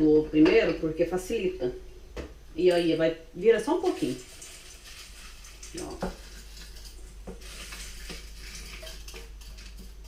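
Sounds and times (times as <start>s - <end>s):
crushed eggshells rustling: 4.0s - 10.0s.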